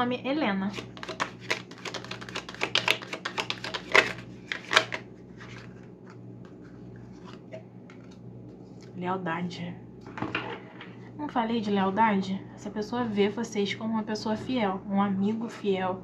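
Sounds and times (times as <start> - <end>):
cards being shuffled: 0.7 - 8.9.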